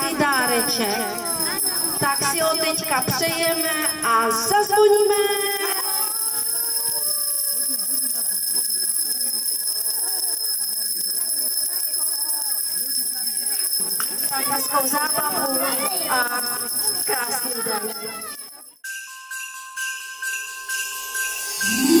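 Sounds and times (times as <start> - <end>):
children chattering: 0.0 - 4.4, 5.2 - 18.8
small hand bells jingling: 0.0 - 22.0.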